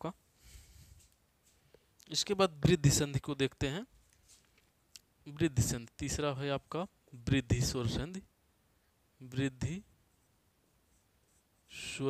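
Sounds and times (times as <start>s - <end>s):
man speaking: 2.1s - 3.9s, 5.3s - 8.3s, 9.2s - 9.9s, 11.7s - 12.0s.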